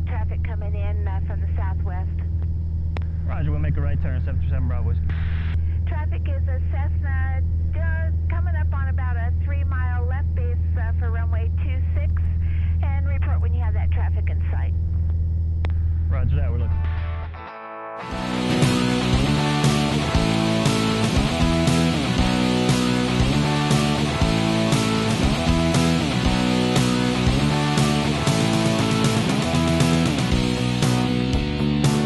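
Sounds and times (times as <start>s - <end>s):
people talking: 0.0s - 2.3s, 3.3s - 14.7s, 16.1s - 16.9s
plane engine drone in cockpit: 0.1s - 6.6s, 7.4s - 12.9s, 18.1s - 32.0s
rock music with electric guitar: 16.6s - 32.0s.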